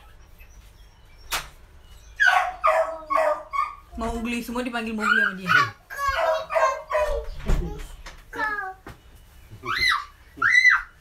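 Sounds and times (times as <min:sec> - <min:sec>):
dog barking: 0:02.2 - 0:03.9, 0:06.0 - 0:07.3.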